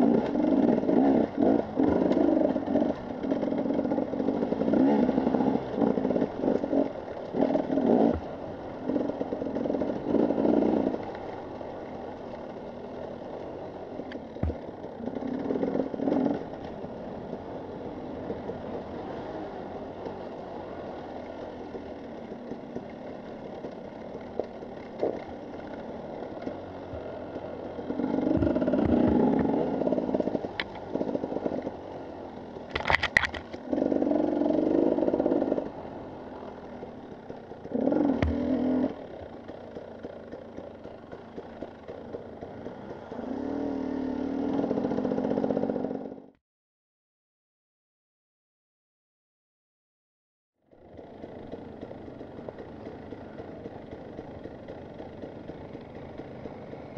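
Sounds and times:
motorcycle engine revving: 0.0s - 46.4s, 50.6s - 56.9s.

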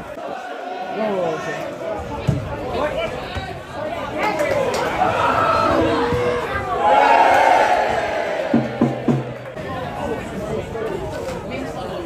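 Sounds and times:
football crowd shouting and chanting: 0.0s - 12.0s.

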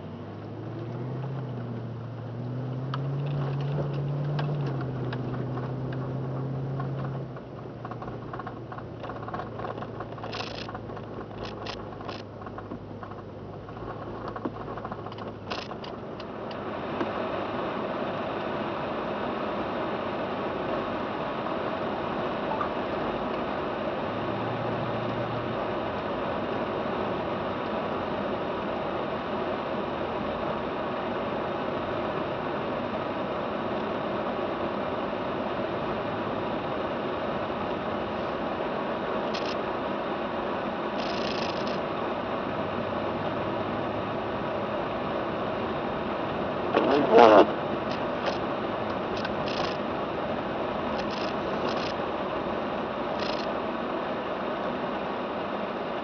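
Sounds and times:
car engine hum: 0.0s - 56.0s
tyre and road noise: 0.0s - 56.0s
faint clicks: 2.7s - 17.1s, 39.3s - 39.6s, 41.0s - 41.8s, 47.9s - 49.8s, 51.0s - 52.0s, 53.2s - 53.5s.

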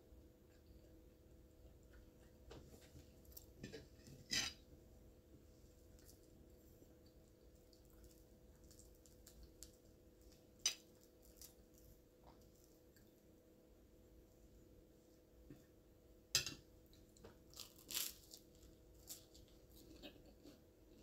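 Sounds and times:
toast crunching: 5.8s - 13.1s, 16.9s - 20.6s.

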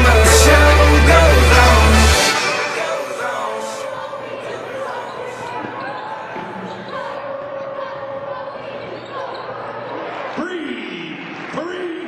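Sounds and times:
voices and crowd murmur echoing: 0.7s - 12.0s.

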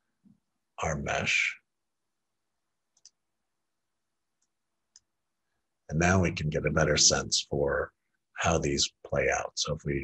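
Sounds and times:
computer mouse clicks: 2.9s - 3.2s.

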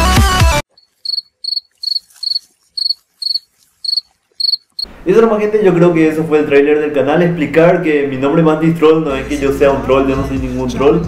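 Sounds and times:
cricket chirping: 0.7s - 4.9s.

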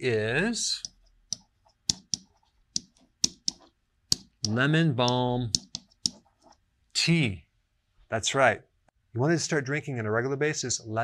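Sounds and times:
marker writing on a whiteboard: 0.8s - 6.7s.

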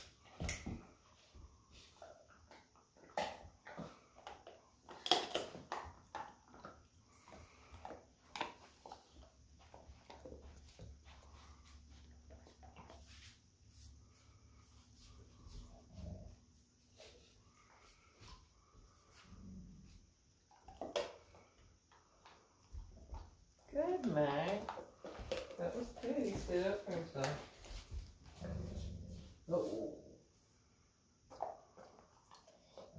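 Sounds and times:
dogs scuffling: 23.8s - 29.9s
low dog grumbles: 28.3s - 30.1s.

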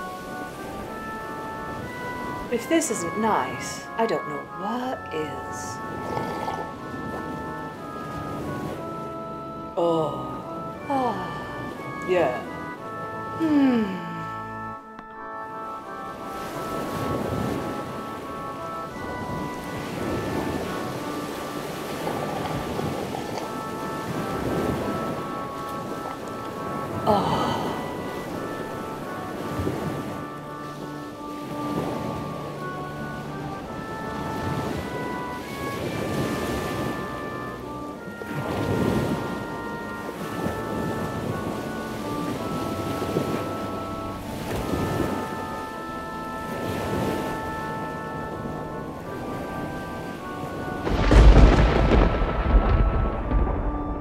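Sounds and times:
soft keyboard music: 0.0s - 54.0s
rain: 18.0s - 29.4s, 48.8s - 54.0s
loud deep thunderclap: 50.8s - 54.0s
thunder rolling: 50.8s - 54.0s.

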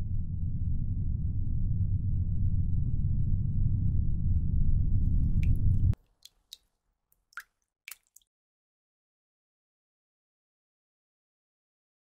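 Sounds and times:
loud low rumbling drone: 0.0s - 6.0s
water dripping from tap: 5.3s - 6.6s, 7.2s - 8.2s.

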